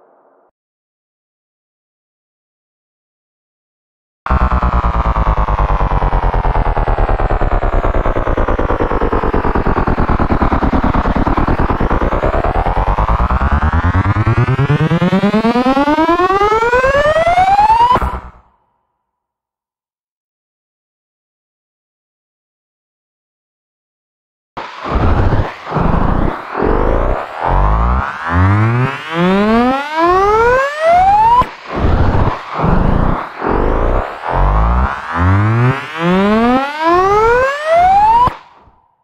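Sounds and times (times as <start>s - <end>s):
buzzy synth riser: 4.3s - 18.4s, 24.6s - 38.6s.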